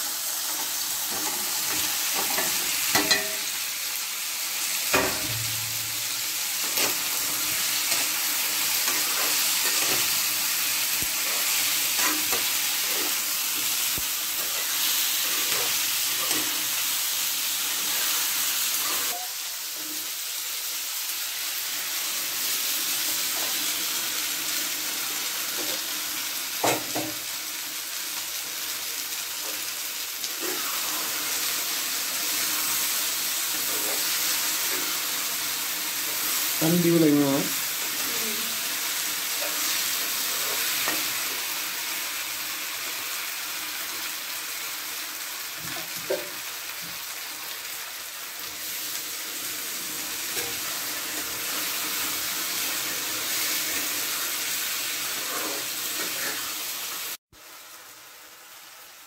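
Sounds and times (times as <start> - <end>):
food sizzling in oil: 0.0 - 59.0
metal spatula scraping a pan: 0.4 - 3.6, 4.9 - 16.9, 30.3 - 35.0, 39.3 - 41.4, 54.9 - 56.6.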